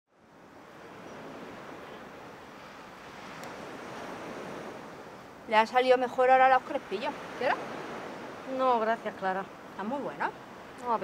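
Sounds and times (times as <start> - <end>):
sea waves washing on beach: 0.1 - 11.0.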